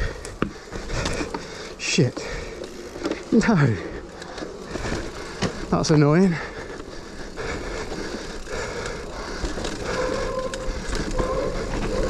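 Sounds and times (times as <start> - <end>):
bike tyres on dirt: 0.0 - 12.0.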